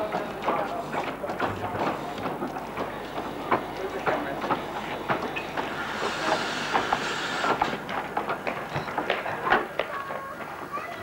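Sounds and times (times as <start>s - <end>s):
wheels clicking on track: 0.0s - 11.0s
steam hiss: 3.3s - 7.9s.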